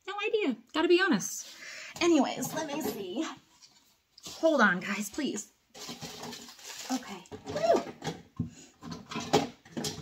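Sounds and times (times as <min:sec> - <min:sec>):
items knocking and clattering: 0:01.9 - 0:04.5, 0:05.7 - 0:10.0
rustling: 0:05.7 - 0:08.0.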